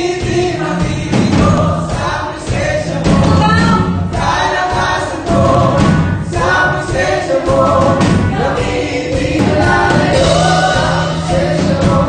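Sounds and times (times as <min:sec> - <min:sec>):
backing voices singing: 0:00.0 - 0:12.0
keyboard: 0:00.0 - 0:12.0
woman singing lead: 0:03.0 - 0:06.8.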